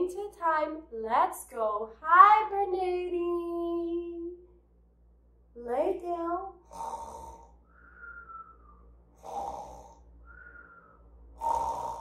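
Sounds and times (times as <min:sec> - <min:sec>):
woman mock snoring: 0:06.6 - 0:07.6, 0:09.2 - 0:10.1, 0:11.4 - 0:12.0
short falling whistle: 0:07.7 - 0:08.9, 0:10.2 - 0:11.1.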